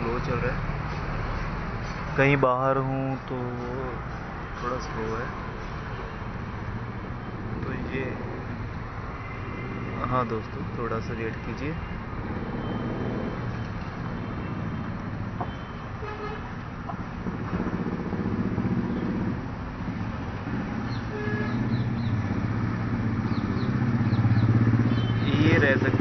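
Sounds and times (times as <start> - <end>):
vehicle engines running: 0.0 - 26.0
car horn toots: 15.4 - 16.6, 21.1 - 21.8.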